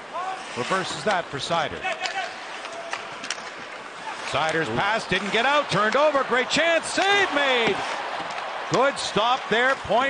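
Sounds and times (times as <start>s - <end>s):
hockey sticks clacking on puck: 0.6s - 10.0s.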